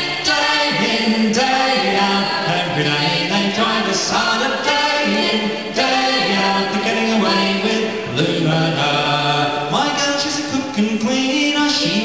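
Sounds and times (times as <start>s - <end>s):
man singing folk song: 0.2s - 12.0s.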